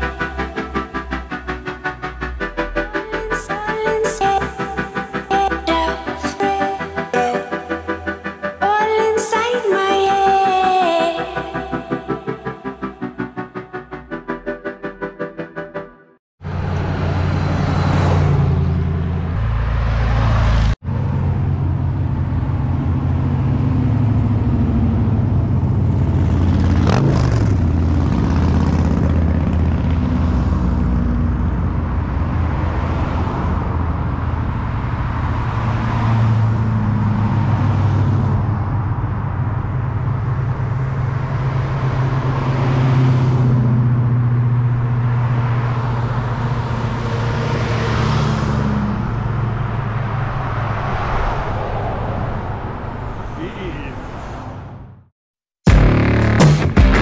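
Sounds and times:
car engines driving past: 0:16.4 - 0:55.0.

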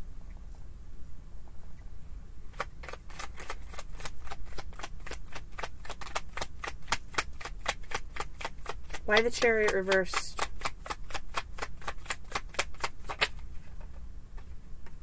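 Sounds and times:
cards being shuffled: 0:02.5 - 0:14.5.

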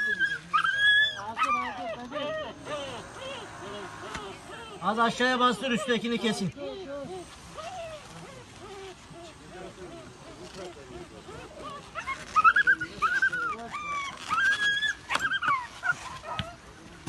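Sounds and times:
puppy whimpering and yelping: 0:00.0 - 0:04.8, 0:11.6 - 0:16.6.

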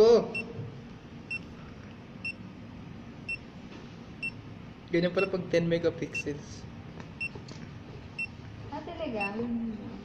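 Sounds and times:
high electronic key beeps: 0:00.3 - 0:00.6, 0:01.3 - 0:01.5, 0:03.3 - 0:03.5, 0:05.2 - 0:05.4, 0:07.2 - 0:07.4, 0:08.2 - 0:08.4.

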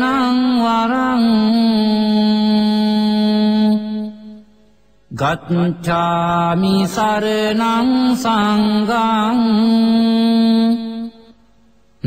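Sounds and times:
person chanting: 0:00.0 - 0:11.4.

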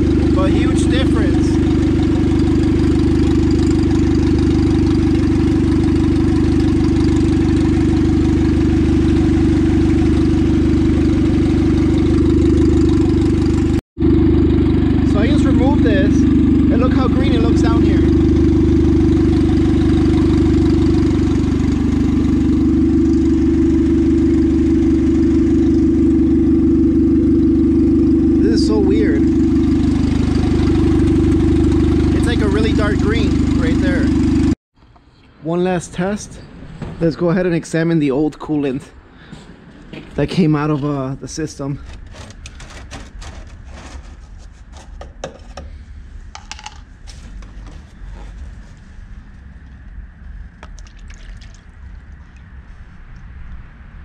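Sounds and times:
car engine idling: 0:00.0 - 0:34.6, 0:39.0 - 0:45.0.

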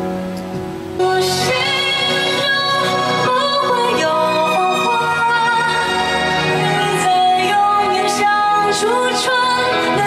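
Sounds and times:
instrumental accompaniment: 0:00.0 - 0:10.0
person singing into microphone: 0:00.8 - 0:10.0.

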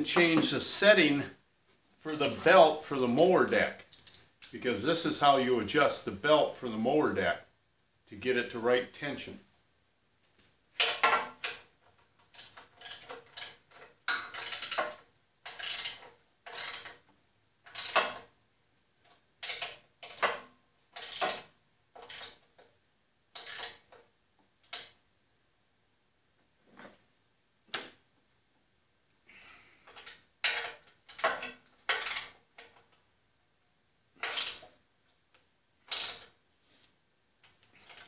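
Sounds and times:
ratchet wrench clicking: 0:10.8 - 0:18.2, 0:19.4 - 0:22.6, 0:23.3 - 0:24.0, 0:29.9 - 0:32.7, 0:34.2 - 0:34.7, 0:35.9 - 0:36.4.

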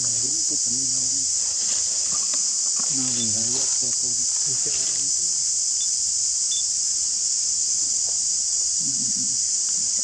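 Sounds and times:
insects buzzing: 0:00.0 - 0:10.0.

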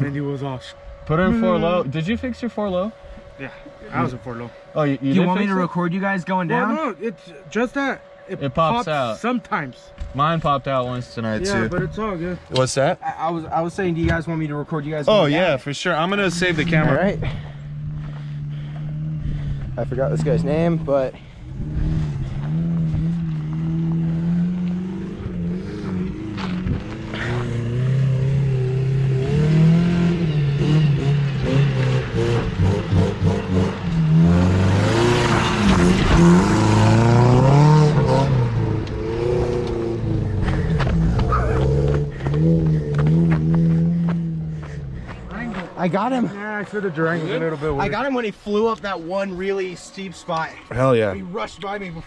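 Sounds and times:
truck engine revving: 0:16.0 - 0:49.1.

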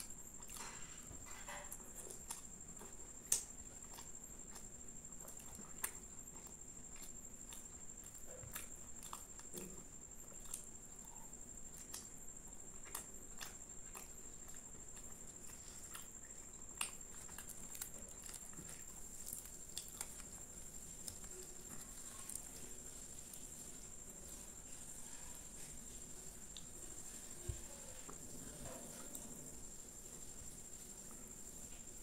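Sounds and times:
chewing with wet mouth clicks: 0:00.0 - 0:23.5, 0:26.4 - 0:27.2
faint high-pitched whine: 0:00.0 - 0:32.0.

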